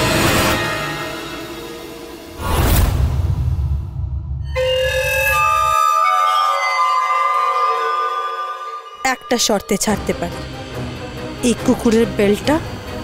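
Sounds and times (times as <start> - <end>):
wind instrument melody: 4.6 - 12.5.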